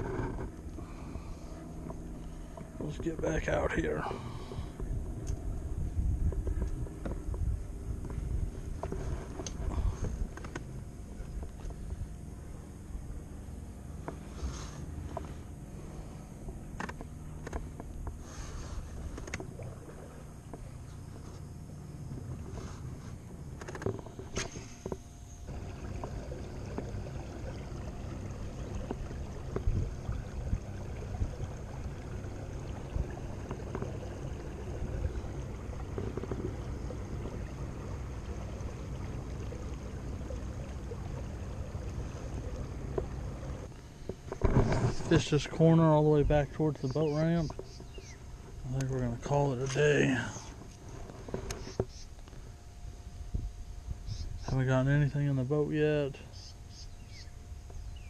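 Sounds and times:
water rushing along kayak hull: 0.0s - 52.5s
small knocks and clicks: 16.4s - 18.2s.

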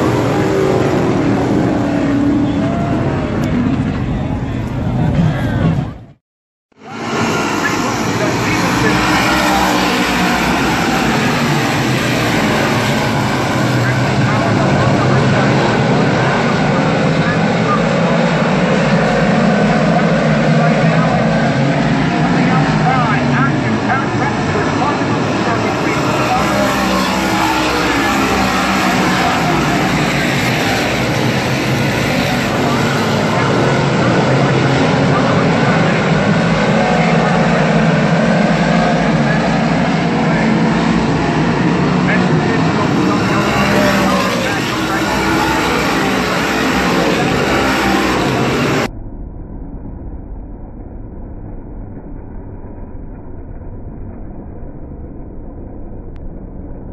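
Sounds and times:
race cars engines roaring: 0.0s - 48.9s.

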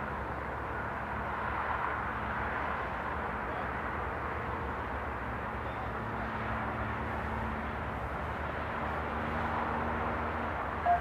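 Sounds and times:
low rumbling ambience: 10.7s - 11.0s.

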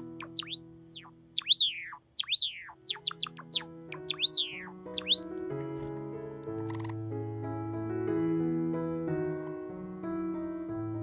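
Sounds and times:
sparrow chirping: 0.0s - 5.4s
soft piano music: 0.0s - 11.0s.

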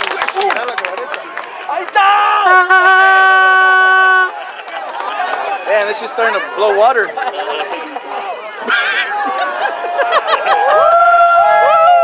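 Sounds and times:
crowd chatter: 0.0s - 12.0s
spectator shouting: 1.7s - 7.1s, 7.7s - 12.0s.

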